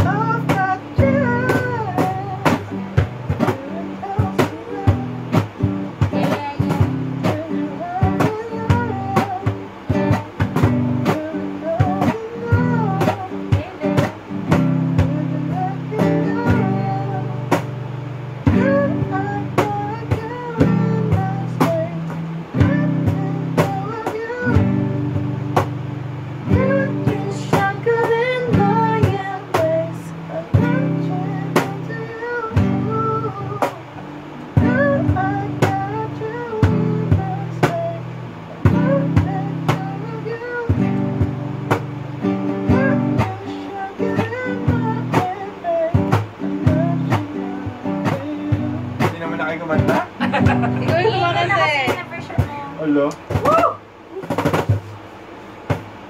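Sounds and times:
person singing: 0.0 - 17.7, 18.4 - 25.3, 26.4 - 34.0, 34.6 - 41.4, 42.6 - 49.2
acoustic guitar chords: 0.0 - 56.0
cajon beating a rhythm: 0.0 - 56.0.

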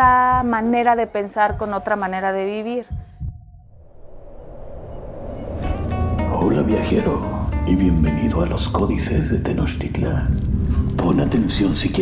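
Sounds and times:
rush of noise: 3.7 - 8.0.

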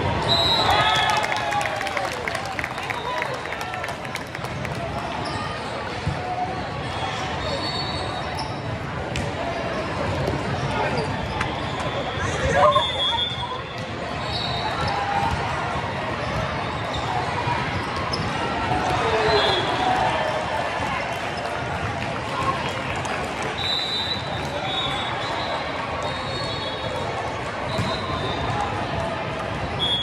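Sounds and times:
hubbub of voices: 0.0 - 30.0
loud shout: 0.2 - 4.0, 18.6 - 21.0.

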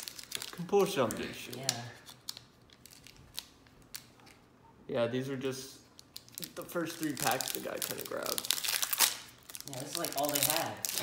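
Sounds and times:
foil wrapper crinkling: 0.0 - 4.4, 5.9 - 11.0.

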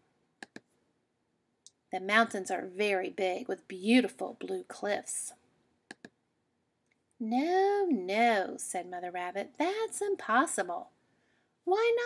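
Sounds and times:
computer mouse clicks: 0.4 - 0.7, 5.9 - 6.2.

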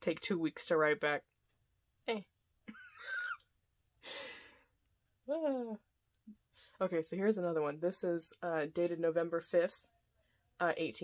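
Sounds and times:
woman's breathy sigh: 4.0 - 4.6.

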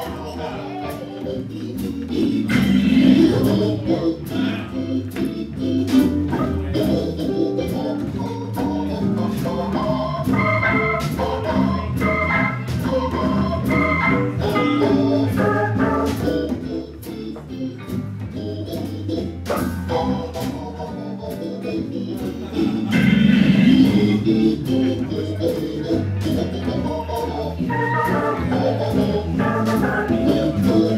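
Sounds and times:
drums: 0.0 - 30.9
organ playing jazz runs: 0.2 - 30.9.

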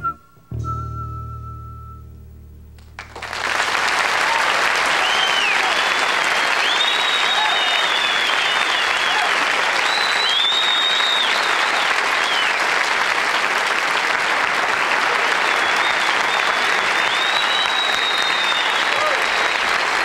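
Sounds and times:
high whistles: 0.0 - 2.2, 4.9 - 12.6, 15.4 - 19.9
audience applauding: 2.8 - 20.0.

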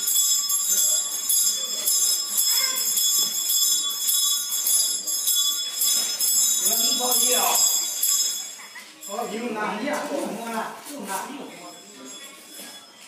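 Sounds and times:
faint voices: 0.0 - 13.0
small bells shaken rhythmically: 0.0 - 13.0.

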